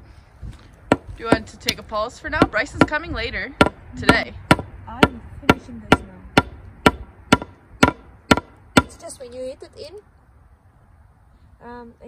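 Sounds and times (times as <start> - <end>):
hammer striking nails into wood: 0.9 - 9.0.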